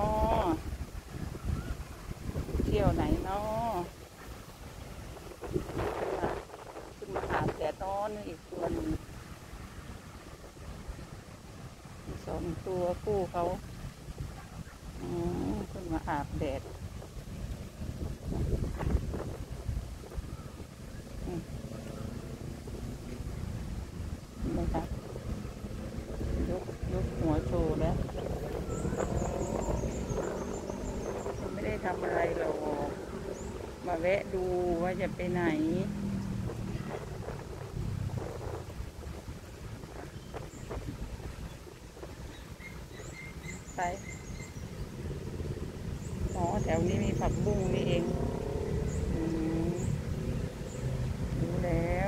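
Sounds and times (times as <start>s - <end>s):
woman speaking: 0.0s - 0.6s, 2.6s - 3.9s, 6.1s - 6.4s, 7.0s - 9.0s, 12.1s - 13.6s, 15.0s - 16.7s, 21.2s - 21.5s, 24.4s - 24.9s, 26.4s - 28.8s, 31.2s - 33.0s, 33.8s - 36.0s, 43.7s - 44.0s, 46.3s - 48.2s, 49.1s - 49.9s, 51.4s - 52.0s
wind rumble on microphone: 0.0s - 52.0s.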